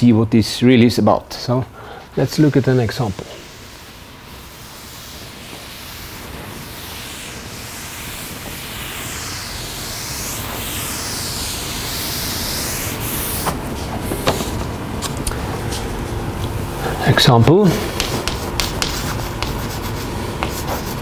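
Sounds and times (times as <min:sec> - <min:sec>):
sponge rubbing on chalkboard: 0:02.2 - 0:14.0, 0:17.7 - 0:21.0.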